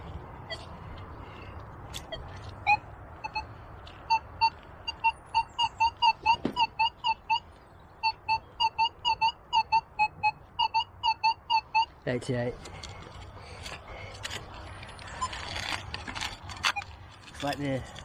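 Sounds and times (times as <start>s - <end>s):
metal detector beeps: 2.0s - 3.5s, 4.1s - 7.4s, 8.0s - 12.2s, 15.0s - 17.7s.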